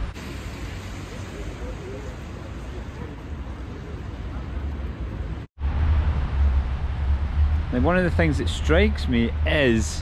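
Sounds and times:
steady noisy hiss: 0:00.0 - 0:10.0.

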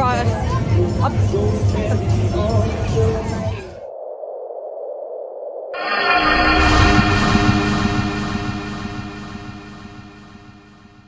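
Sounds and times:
deep rumbling hit: 0:05.8 - 0:11.0
ringing chord of held tones: 0:05.8 - 0:11.0.

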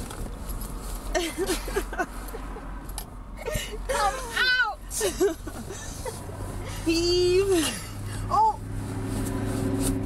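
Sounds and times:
women laughing: 0:01.1 - 0:02.7, 0:03.4 - 0:06.9.

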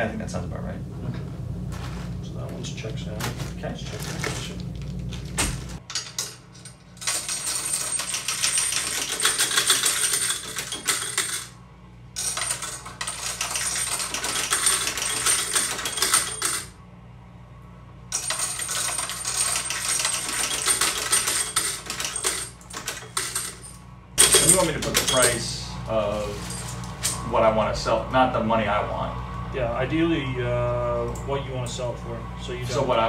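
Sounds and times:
coin counting machine rattle: 0:05.8 - 0:11.6, 0:12.2 - 0:16.8, 0:18.1 - 0:25.6, 0:26.3 - 0:27.2.

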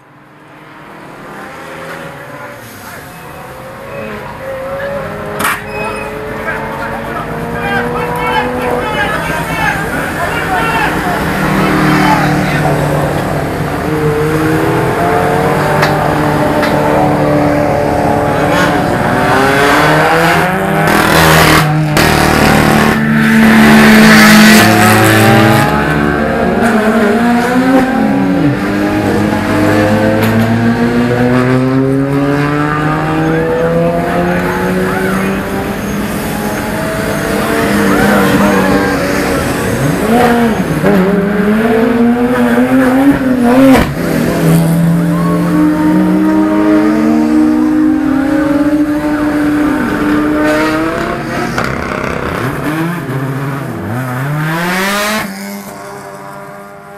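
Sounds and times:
race car engines passing: 0:00.0 - 0:56.9.

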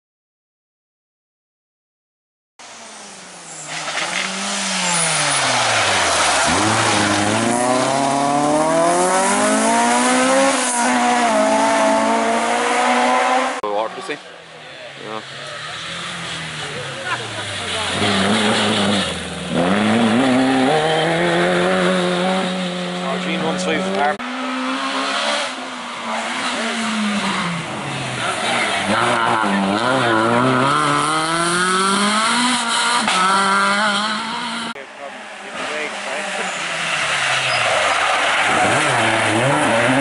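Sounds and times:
rally car engine revving: 0:02.6 - 0:40.0.

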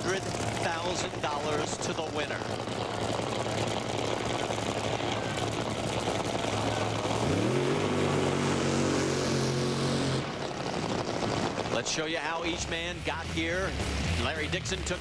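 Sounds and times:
dragster engine revving: 0:00.0 - 0:15.0.

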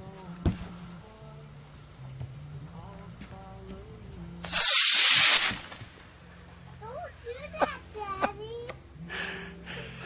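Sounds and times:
rocket motor rushing hiss: 0:04.4 - 0:05.9.

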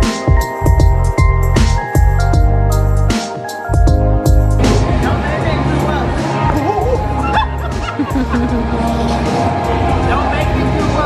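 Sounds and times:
music with heavy bass beat: 0:00.0 - 0:11.0.

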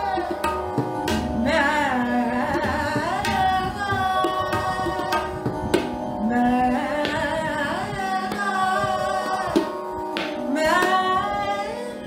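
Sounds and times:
tabla strokes: 0:00.0 - 0:11.7
woman singing: 0:00.0 - 0:12.0.

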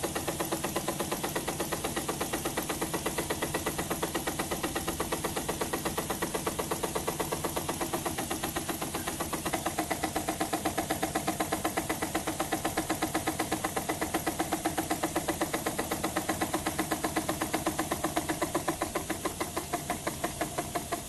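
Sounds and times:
model steam engine puffing: 0:00.0 - 0:21.0.

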